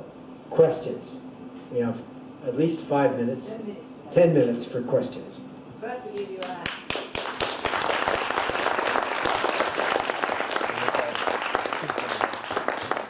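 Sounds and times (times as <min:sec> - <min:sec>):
audience applauding: 0:06.5 - 0:13.0.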